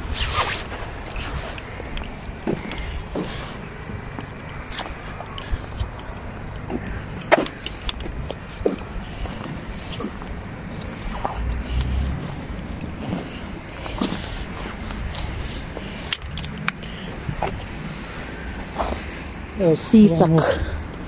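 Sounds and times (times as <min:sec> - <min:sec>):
low outdoor rumble: 0:00.0 - 0:21.0.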